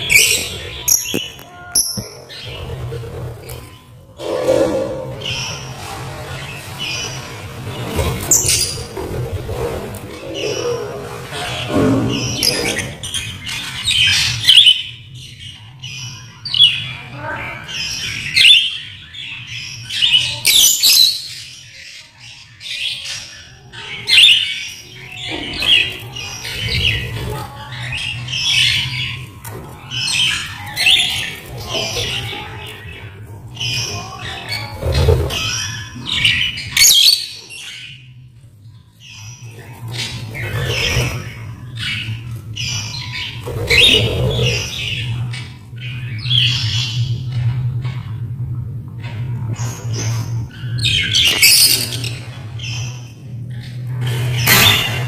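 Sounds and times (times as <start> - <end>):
caged birds chirping and squawking: 0.0 - 55.0.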